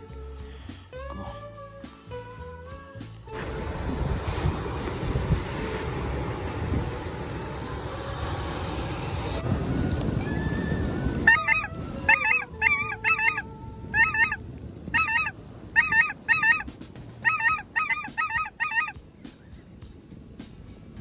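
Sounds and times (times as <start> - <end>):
wind rumbling on microphone: 0.0 - 21.0
geese honking: 11.2 - 19.0.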